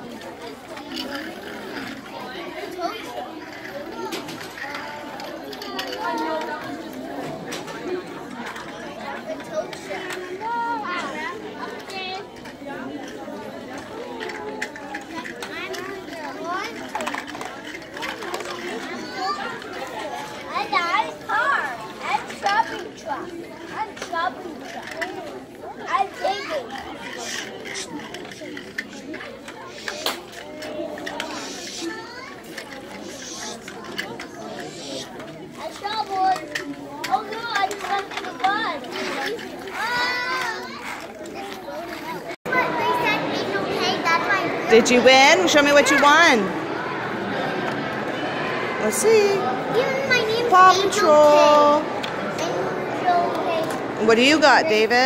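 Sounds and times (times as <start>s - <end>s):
chatter of children and adults: 0.0s - 55.0s.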